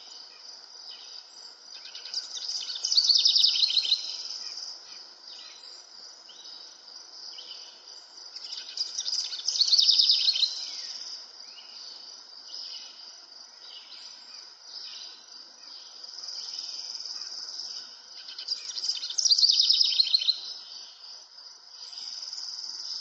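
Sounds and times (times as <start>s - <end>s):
insects chirring: 0.0s - 23.0s
bird singing trills: 1.8s - 4.6s, 8.4s - 11.8s, 17.7s - 21.0s.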